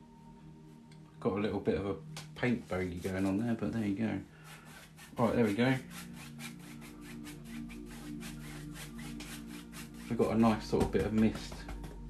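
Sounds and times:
soft background music: 0.0s - 12.0s
brush strokes on canvas: 2.4s - 11.8s.

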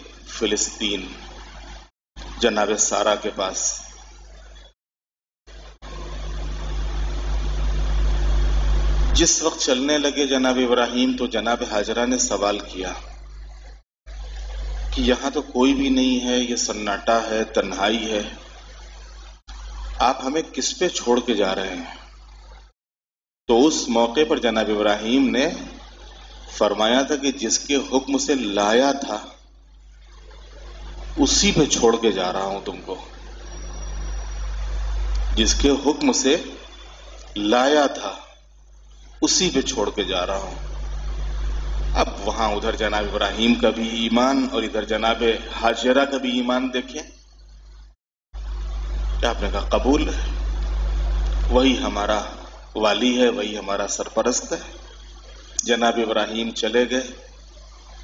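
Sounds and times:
low hum with faint hiss: 0.0s - 4.7s, 5.5s - 22.7s, 23.5s - 58.0s.

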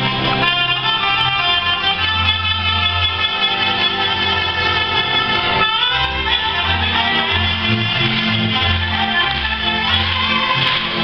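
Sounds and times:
accordion: 0.0s - 11.0s
bass: 0.0s - 11.0s
clarinets and trumpet melody: 0.0s - 11.0s.

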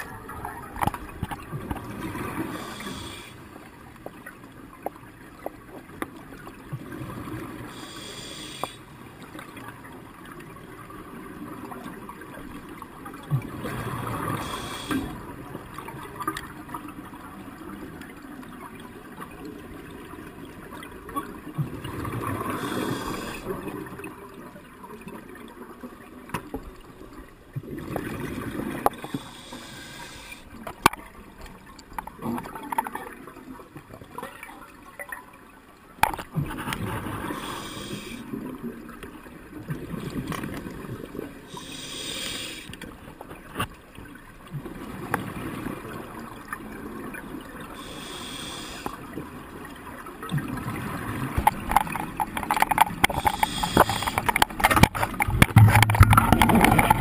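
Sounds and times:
regulator hissing inhalations: 2.5s - 3.4s, 7.7s - 8.8s, 14.4s - 15.2s, 22.6s - 23.5s, 29.1s - 30.5s, 37.3s - 38.2s, 41.5s - 42.7s, 47.8s - 49.0s, 53.2s - 54.3s
exhaled bubbles gurgling: 9.4s - 35.2s, 44.4s - 57.0s
small clicks and knocks: 30.6s - 33.0s, 51.4s - 57.0s.

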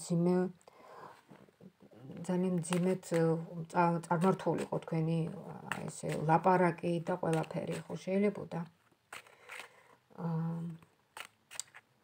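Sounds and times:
person speaking: 1.5s - 10.9s.

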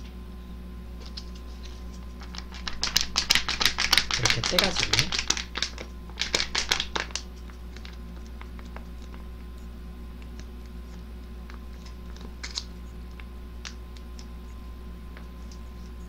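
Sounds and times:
plastic packet crinkling: 1.0s - 9.3s.

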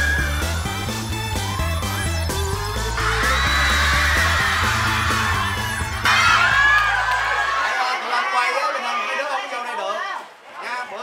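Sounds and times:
children screaming and cheering: 0.0s - 0.7s, 2.6s - 8.0s
background music with bass line: 0.0s - 7.6s.

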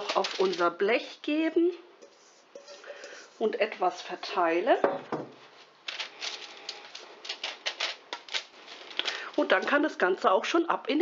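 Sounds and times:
baking paper rustling: 0.0s - 1.2s, 5.4s - 10.3s.

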